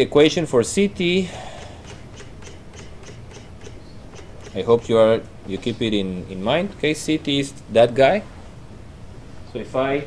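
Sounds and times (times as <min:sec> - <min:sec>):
low steady hum: 0:00.0 - 0:10.0
mouse scroll wheel clicking: 0:01.6 - 0:05.0.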